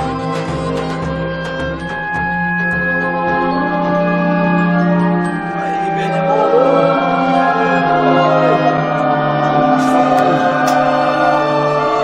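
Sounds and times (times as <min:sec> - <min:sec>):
held orchestral chords: 0:00.0 - 0:12.0
choir-like singing: 0:05.5 - 0:12.0.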